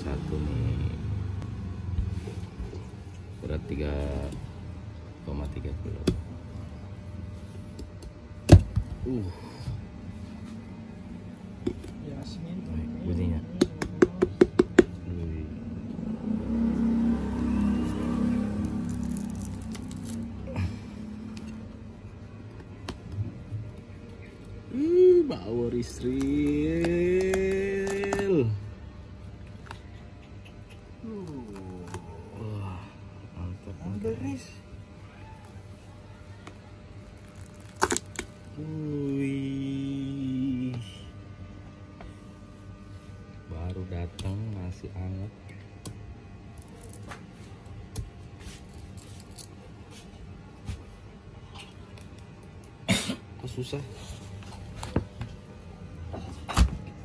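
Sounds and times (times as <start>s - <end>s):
low background hum: 0.0s - 57.0s
knife tapping fruit husk: 13.5s - 15.0s, 25.8s - 28.4s
fruit husk crackling tear: 17.6s - 20.5s, 25.7s - 28.5s, 31.0s - 32.3s, 37.0s - 38.6s, 46.6s - 47.2s, 48.6s - 49.6s.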